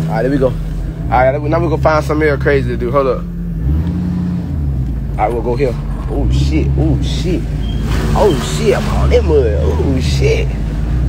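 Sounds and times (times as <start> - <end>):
truck engine running inside cab: 0.0 - 11.0.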